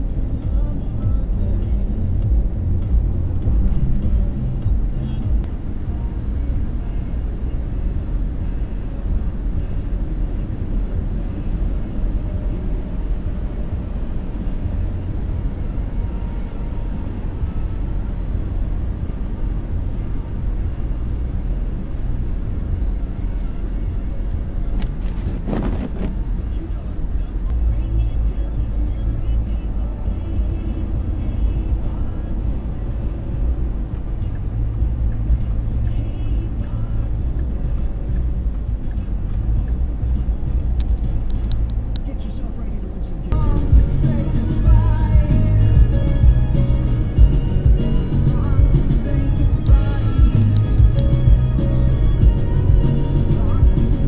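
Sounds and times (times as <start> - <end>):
car cabin road rumble: 0.0 - 54.0.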